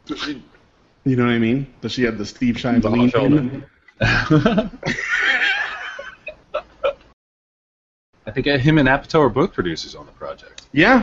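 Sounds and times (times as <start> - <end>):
person laughing: 4.0 - 7.1.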